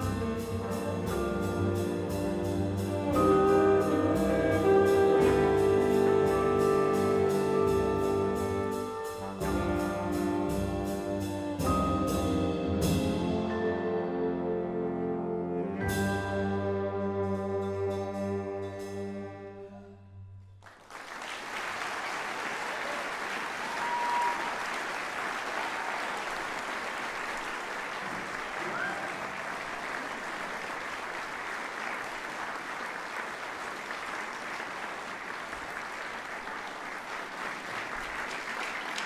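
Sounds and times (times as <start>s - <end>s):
brass chord: 0.0s - 20.2s
audience applauding: 20.6s - 39.0s.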